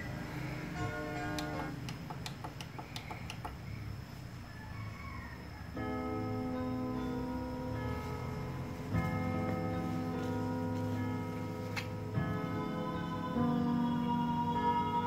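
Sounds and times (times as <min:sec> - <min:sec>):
long steady ringing tones: 0:00.0 - 0:02.0, 0:03.6 - 0:15.0
music from cd player: 0:00.0 - 0:02.3, 0:06.4 - 0:15.0.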